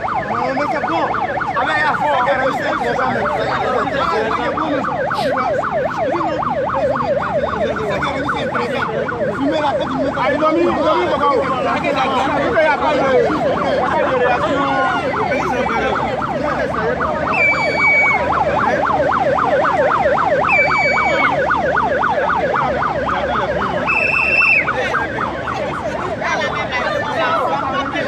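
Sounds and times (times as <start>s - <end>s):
siren yelping: 0.0s - 28.0s.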